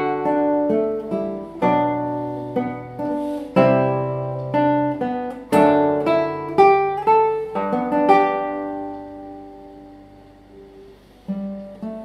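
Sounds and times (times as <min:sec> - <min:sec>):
guitar chord ringing: 0:00.0 - 0:12.0
soft plucked guitar note: 0:00.0 - 0:12.0.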